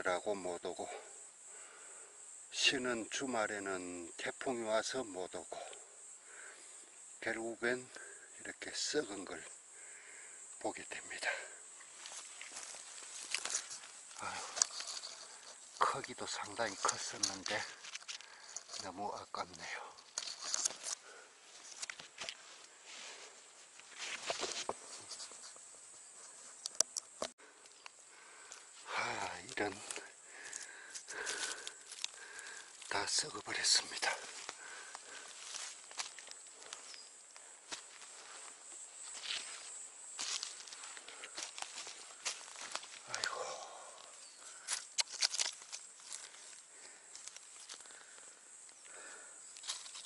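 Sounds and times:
high insect drone: 0.0s - 50.0s
twigs and leaves rustling: 5.2s - 50.0s
footsteps in dry leaves: 11.9s - 15.4s, 34.1s - 37.0s, 39.0s - 43.1s.

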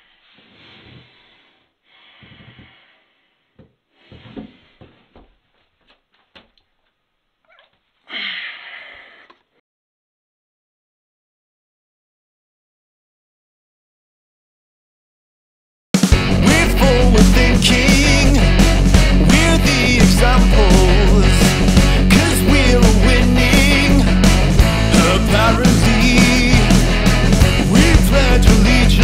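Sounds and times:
man breathing heavily through nose: 0.0s - 5.1s
bass guitar: 16.0s - 29.0s
electronic drums: 16.0s - 29.0s
guitar: 16.0s - 29.0s
rock song: 16.0s - 29.0s.

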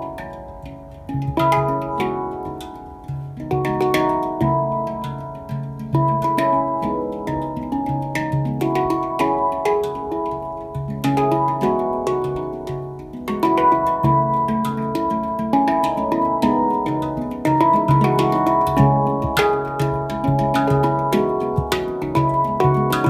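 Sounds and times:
handpans ringing: 0.0s - 23.0s.

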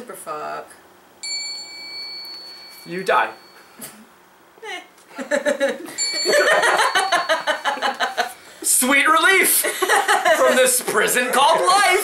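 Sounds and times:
small bell ringing: 1.2s - 4.0s, 5.9s - 8.5s.

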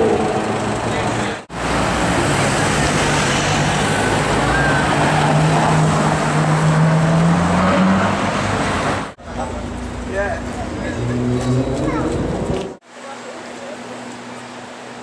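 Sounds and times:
street noise: 0.0s - 15.0s.

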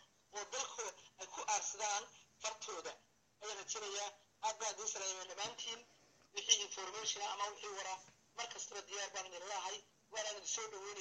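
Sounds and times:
person speaking over telephone: 0.3s - 11.0s.

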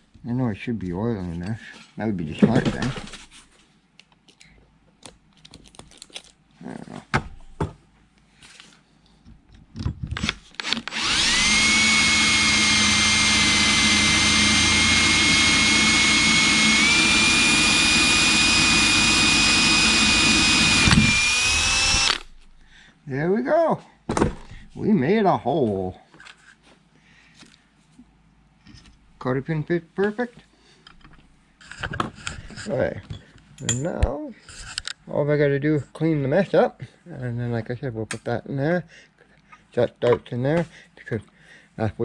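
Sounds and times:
cordless drill whining: 10.2s - 22.4s.

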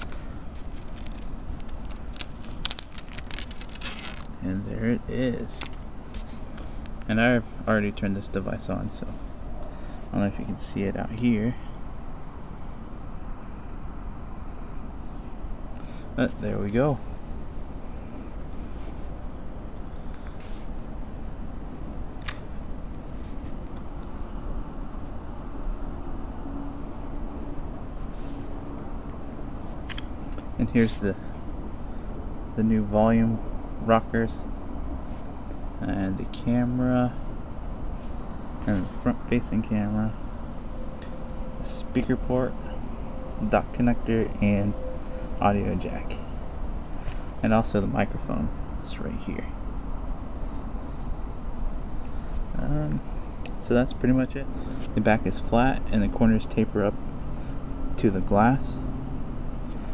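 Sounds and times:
plastic film crackling: 0.0s - 4.4s
steady low rumble: 0.0s - 59.9s
sharp click: 22.2s - 22.5s, 29.8s - 30.5s.

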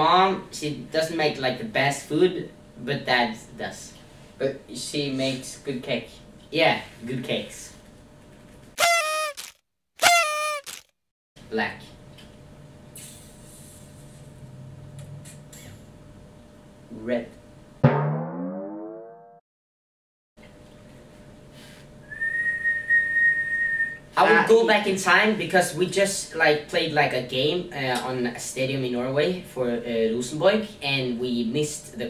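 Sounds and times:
high whistled note: 8.8s - 9.4s
honk sound effect: 8.8s - 9.4s.

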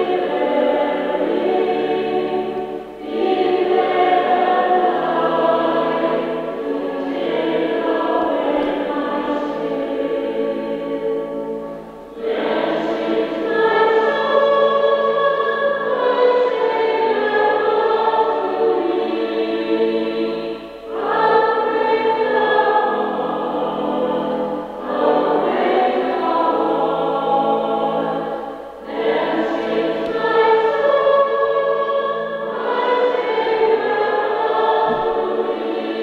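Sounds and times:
choir singing sacred music: 0.0s - 36.0s.

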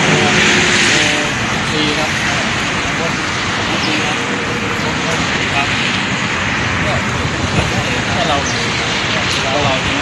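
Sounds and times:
loud rushing noise: 0.0s - 10.0s
men talking quietly: 0.0s - 10.0s.

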